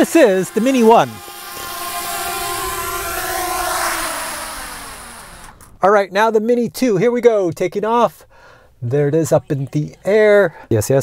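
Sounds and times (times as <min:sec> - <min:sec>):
drone propellers whirring: 0:00.0 - 0:05.9.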